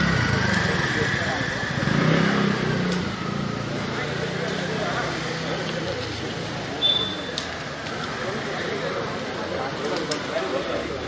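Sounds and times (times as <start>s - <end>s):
vehicle engine running: 0.0s - 6.7s
outdoor background noise: 0.0s - 11.0s.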